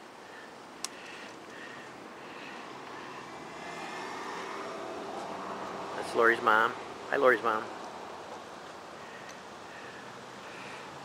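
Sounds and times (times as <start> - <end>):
passing vehicle engine and road noise: 0.0 - 11.0.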